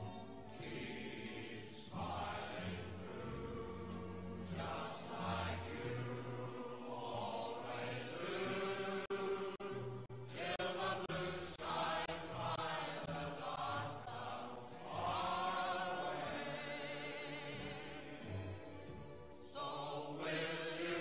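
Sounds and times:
choir-like chanting voices: 0.0 - 21.0.

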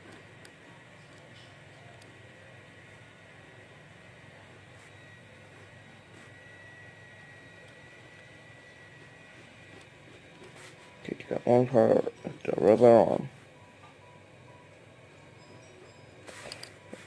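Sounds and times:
thin high whine: 0.0 - 17.0.

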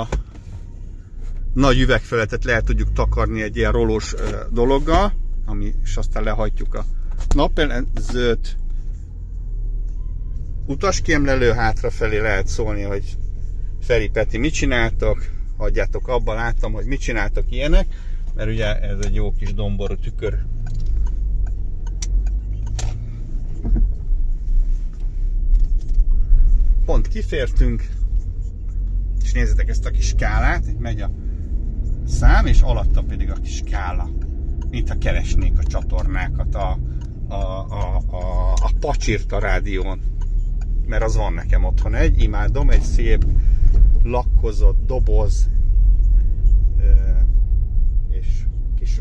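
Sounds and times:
diesel engine rumble: 0.0 - 49.0
sharp clicks: 20.5 - 23.0.

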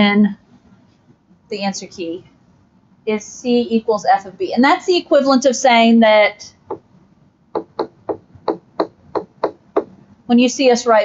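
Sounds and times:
stylus tapping on screen: 6.6 - 6.9, 7.5 - 10.0.

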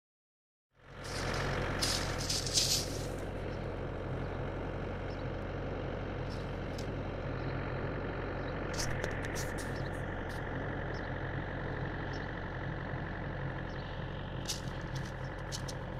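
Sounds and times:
low motor hum: 0.8 - 15.9.

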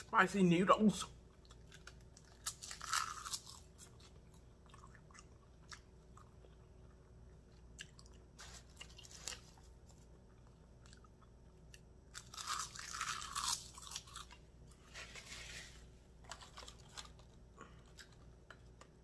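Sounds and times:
person chewing noodles: 1.2 - 14.9.

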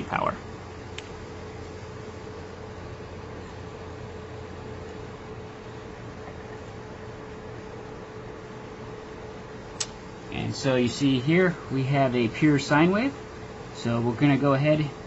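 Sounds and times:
cooling fans whirring: 0.0 - 15.0.

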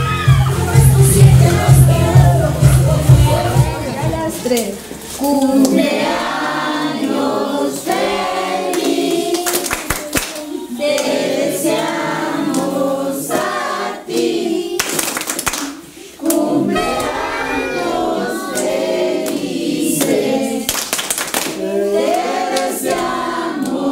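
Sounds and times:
group of people singing: 0.0 - 23.9
people clapping: 4.6 - 23.9.

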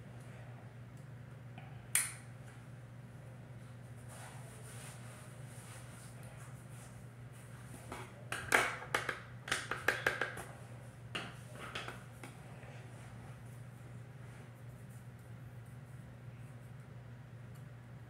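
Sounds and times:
plastic items clicking and tapping: 8.4 - 10.5.

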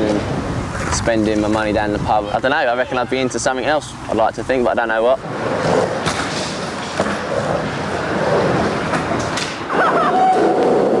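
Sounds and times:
skateboard wheels rolling: 0.0 - 11.0.

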